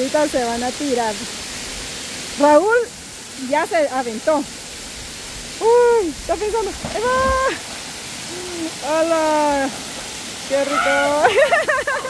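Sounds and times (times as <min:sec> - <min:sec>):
waterfall rushing: 0:00.0 - 0:12.0
splash into pool: 0:06.4 - 0:11.7
person calling out: 0:06.9 - 0:07.6, 0:08.3 - 0:09.7, 0:10.5 - 0:11.4.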